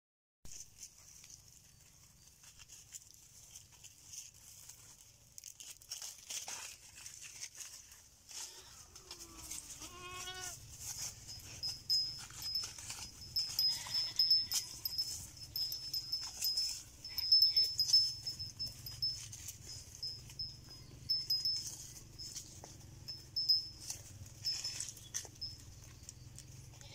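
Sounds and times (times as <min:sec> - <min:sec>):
crackling and rustling: 0:00.5 - 0:26.9
goat bleating: 0:08.3 - 0:10.6, 0:13.4 - 0:14.9
thin high tone: 0:08.4 - 0:25.9.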